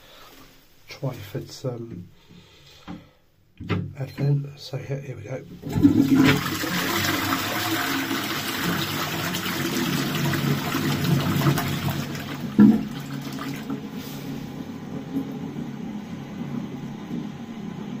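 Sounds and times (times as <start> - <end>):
water running: 5.5 - 15.4
toilet flushing: 5.5 - 18.0.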